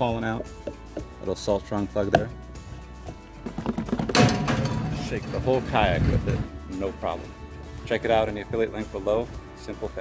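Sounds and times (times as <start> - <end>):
background music: 0.0 - 10.0
plastic kayak knocking and rattling: 3.0 - 5.0.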